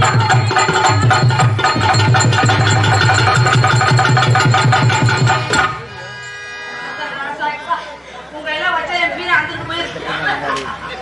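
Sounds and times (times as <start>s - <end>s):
fast hand drum beat: 0.0s - 5.8s
harmonium: 0.0s - 10.2s.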